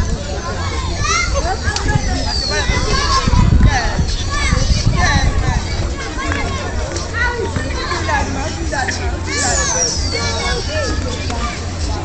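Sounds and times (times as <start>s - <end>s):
young people calling and chattering: 0.0s - 12.0s.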